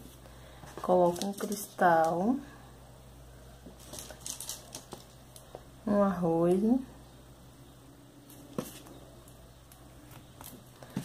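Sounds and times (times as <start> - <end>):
beads clicking and rustling: 1.0 - 2.2, 3.8 - 5.6.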